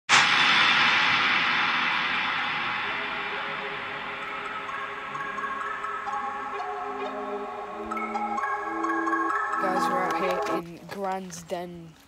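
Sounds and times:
cymbal-like swoosh: 0.1 - 8.1
faint music tones: 2.8 - 12.0.

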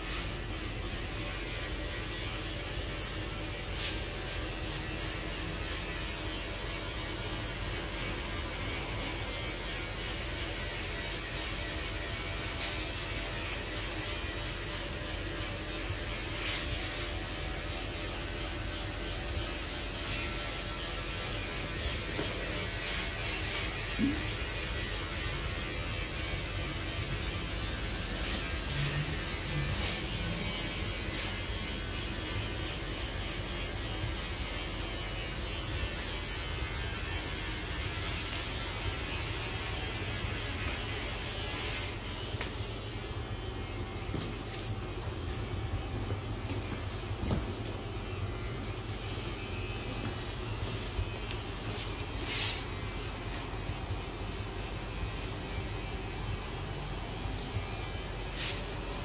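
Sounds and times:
low electrical hum: 0.0 - 59.0
razor scraping stubble: 10.6 - 35.2.

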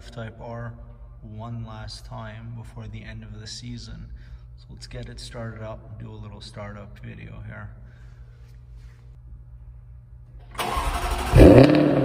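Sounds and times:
low steady hum: 0.0 - 11.2
car starter cranking engine: 10.4 - 12.0.

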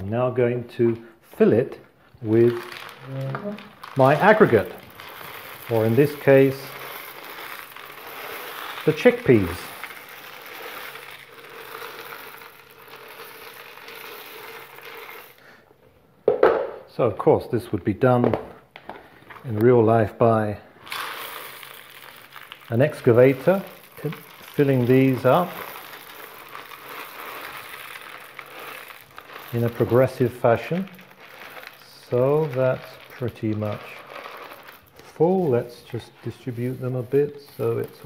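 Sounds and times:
dried chickpeas pouring and rattling: 2.2 - 15.6, 19.3 - 38.0.

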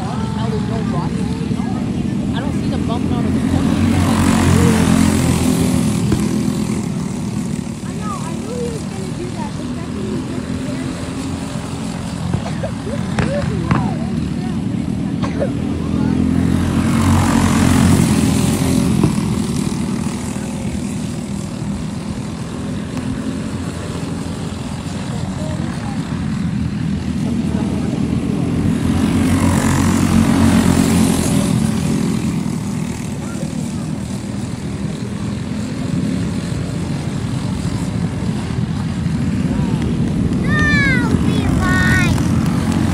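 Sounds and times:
go-kart engines racing: 0.0 - 42.9.

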